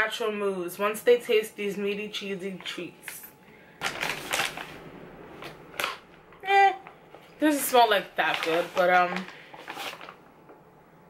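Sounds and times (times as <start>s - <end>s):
plastic bag crinkling: 3.8s - 10.6s.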